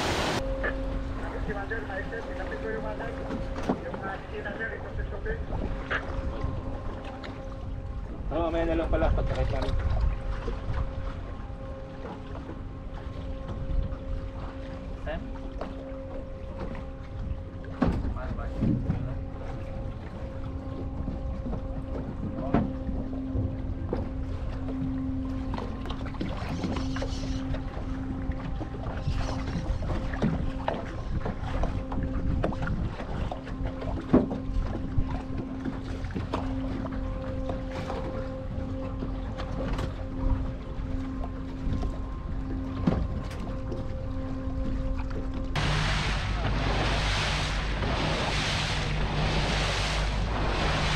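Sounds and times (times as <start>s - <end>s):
boat engine humming: 0.0s - 50.9s
wind noise on microphone: 26.2s - 35.5s.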